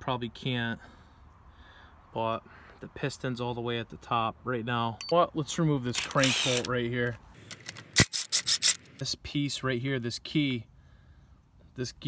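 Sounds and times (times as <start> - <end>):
sharp metallic click: 5.9 - 6.8, 7.4 - 9.1.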